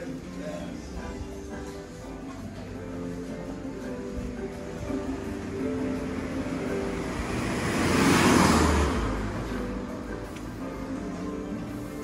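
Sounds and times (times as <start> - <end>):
faint background music: 0.0 - 12.0
road vehicle passing: 1.6 - 12.0.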